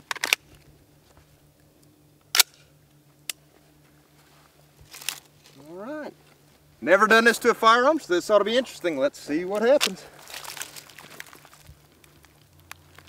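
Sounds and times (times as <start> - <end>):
rifle clacking on gravel: 0.0 - 0.7, 9.5 - 13.0
gravel crunch: 2.4 - 13.0.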